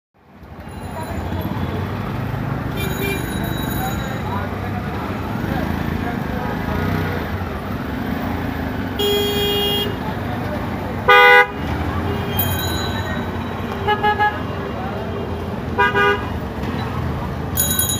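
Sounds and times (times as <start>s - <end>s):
car engines in traffic: 0.2s - 17.9s
people's voices: 0.4s - 17.9s
vehicle horns honking: 2.7s - 3.5s, 8.9s - 10.1s, 11.0s - 16.5s.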